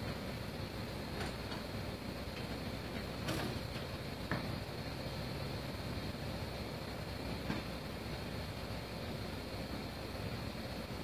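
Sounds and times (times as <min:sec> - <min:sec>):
diesel tractor engine idling: 0:00.0 - 0:11.0.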